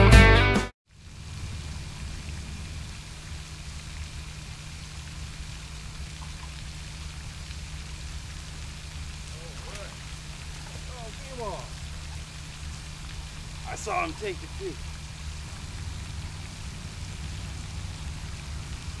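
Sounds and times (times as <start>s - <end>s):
fountain spray splashing on water: 0.9s - 19.0s.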